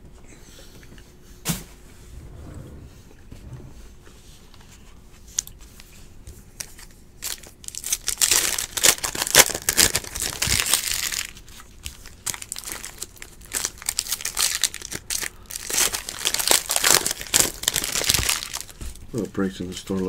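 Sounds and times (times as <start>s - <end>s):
foil wrapper tearing and crinkling: 7.2s - 18.8s.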